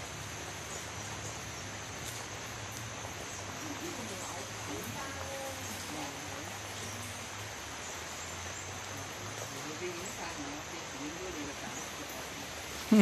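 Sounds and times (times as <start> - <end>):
background hiss: 0.0 - 13.0.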